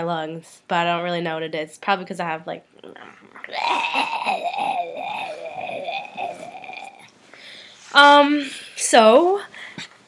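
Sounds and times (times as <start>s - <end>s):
woman making raspy vocal sound: 2.8s - 7.1s.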